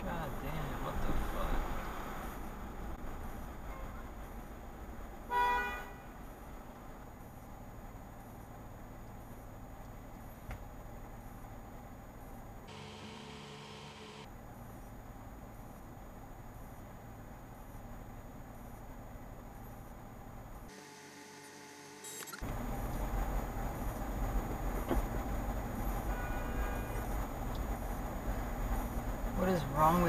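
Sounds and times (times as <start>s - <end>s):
low car cabin rumble: 22.4s - 30.0s.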